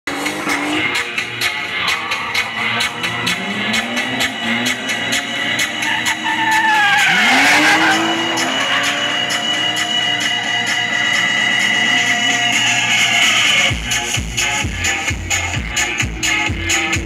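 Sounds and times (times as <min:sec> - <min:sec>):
car engine revving: 0:00.0 - 0:17.0
music with fast beat: 0:00.1 - 0:17.0
tyres squealing: 0:02.2 - 0:13.5.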